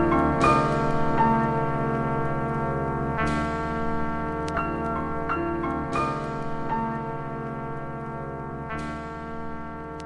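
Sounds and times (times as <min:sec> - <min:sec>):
sustained background music chord: 0:00.0 - 0:08.6.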